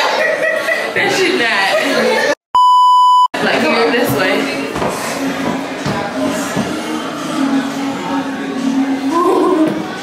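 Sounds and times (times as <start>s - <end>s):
censor bleep tone: 2.6s - 3.4s.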